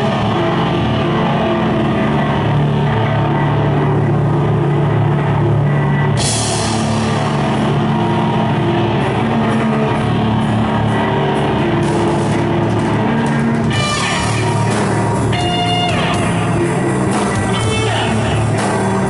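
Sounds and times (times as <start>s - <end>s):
groove metal band playing: 0.0s - 19.0s.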